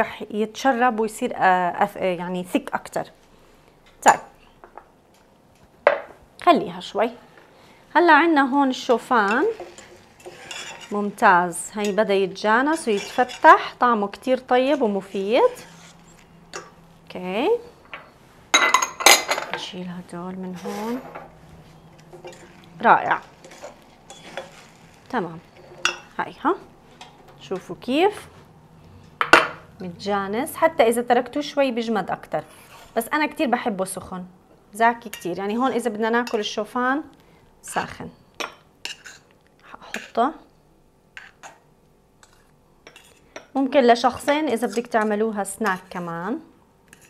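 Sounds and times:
spoon scraping a saucepan: 8.9 - 13.8, 14.6 - 16.8, 20.5 - 26.2, 38.8 - 40.2, 42.2 - 43.5, 44.1 - 46.1
dishes and utensils clinking: 9.2 - 11.1, 17.8 - 19.7, 22.0 - 26.2
person speaking: 19.6 - 21.2, 22.7 - 23.4.

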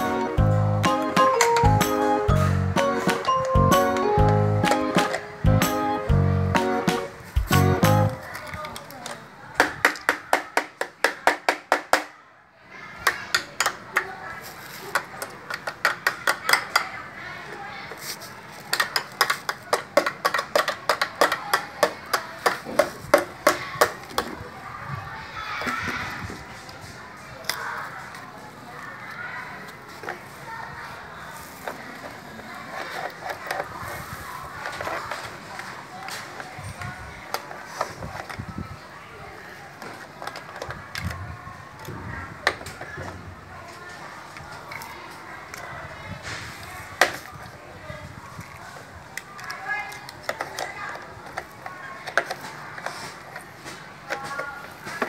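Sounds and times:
plastic toy hammer tapping: 8.4 - 12.1, 13.0 - 14.1, 14.9 - 16.9, 18.7 - 24.3
plastic toy tools scraping: 13.3 - 16.9, 17.5 - 24.4, 31.4 - 38.6, 39.8 - 43.2, 48.3 - 55.0.

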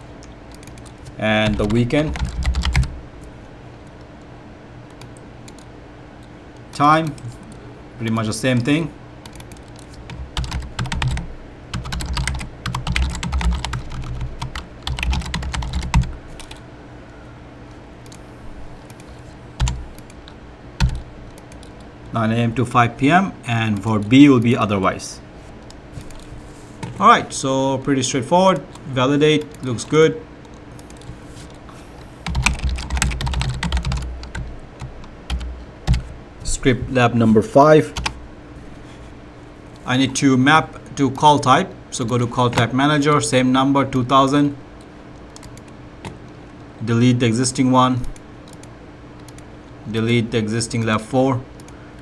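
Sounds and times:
computer keyboard typing: 0.2 - 2.9, 4.9 - 5.7, 8.1 - 16.6, 18.8 - 21.9, 28.5 - 31.6, 32.2 - 36.1, 38.0 - 38.2, 45.3 - 46.2, 48.1 - 49.5.

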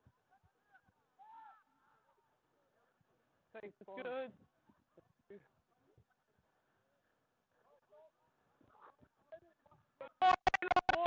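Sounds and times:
distant shouted call: 0.0 - 2.3.

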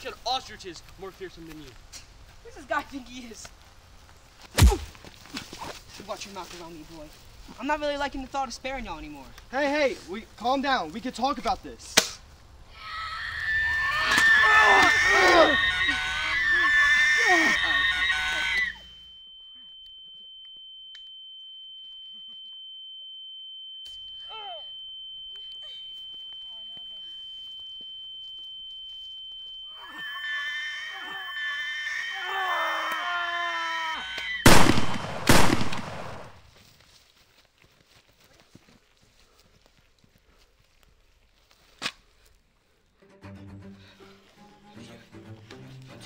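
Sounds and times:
agitated voices: 13.9 - 18.8
high ringing tone: 15.1 - 31.7
gunshots: 34.4 - 36.4.

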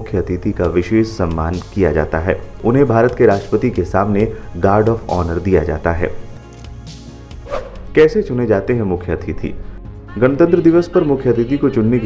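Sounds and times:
man narrating: 0.0 - 6.3, 7.9 - 12.0
soft background music: 0.0 - 12.0.

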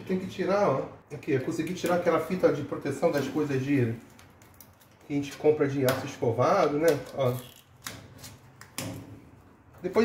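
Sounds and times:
person speaking: 0.0 - 4.1, 5.0 - 7.6, 9.8 - 10.0
protective tape peeling off metal: 3.0 - 5.3, 6.8 - 9.2.

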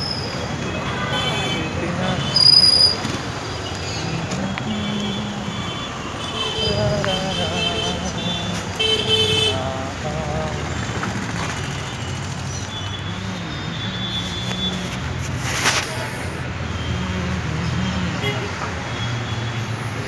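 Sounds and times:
street traffic: 0.0 - 20.0
vehicle horns honking: 0.5 - 3.0, 3.6 - 10.0.

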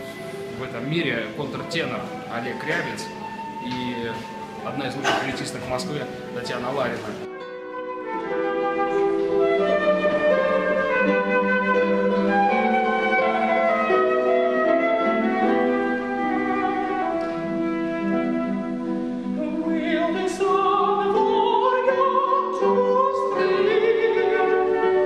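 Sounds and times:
classical guitars: 0.0 - 25.0
flute slow melody: 0.0 - 25.0.

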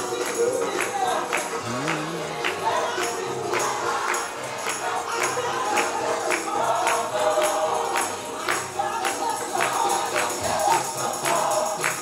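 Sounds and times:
gospel choir singing: 0.0 - 12.0
tambourine beat: 0.0 - 12.0.

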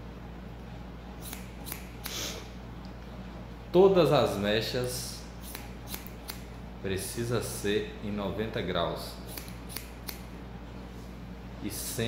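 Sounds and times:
scissors snipping hair: 1.2 - 2.4, 5.4 - 6.5, 9.3 - 10.3.

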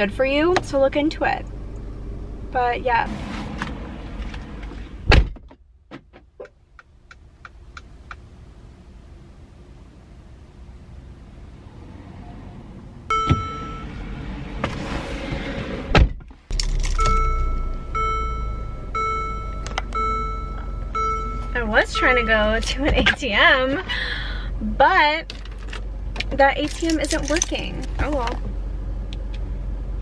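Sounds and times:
car door thunk: 5.0 - 6.3, 13.1 - 13.7, 15.9 - 17.2
car chime: 13.1 - 14.0, 16.5 - 23.3
low steady hum: 16.0 - 30.0.

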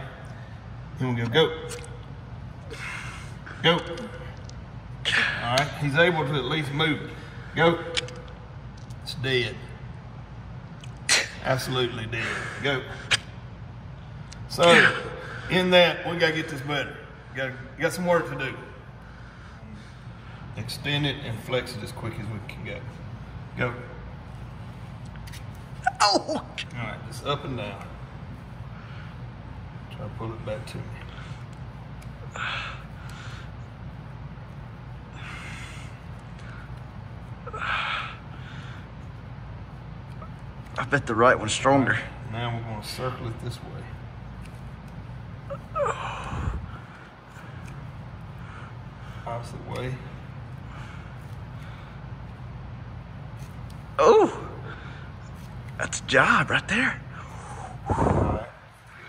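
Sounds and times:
low background hum: 0.0 - 59.0.

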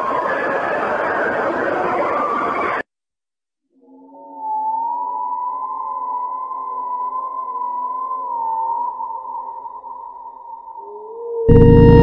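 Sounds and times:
electronic drone: 11.5 - 12.0.

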